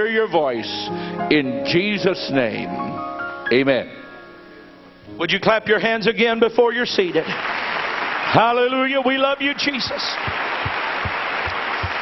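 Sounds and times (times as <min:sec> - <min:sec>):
crowd clapping: 0:07.2 - 0:12.0.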